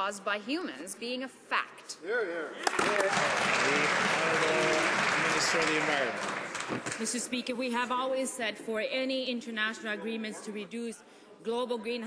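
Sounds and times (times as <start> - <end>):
crowd clapping: 2.6 - 7.3.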